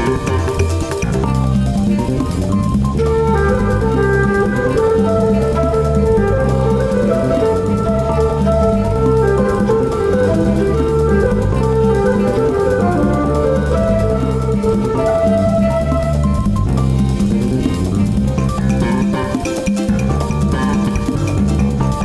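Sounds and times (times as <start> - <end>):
swing jazz instrumental: 0.0 - 22.0.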